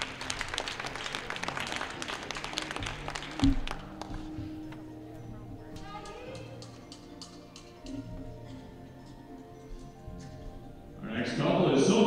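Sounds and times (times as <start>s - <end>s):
audience applause: 0.0s - 4.4s
background music: 0.0s - 12.0s.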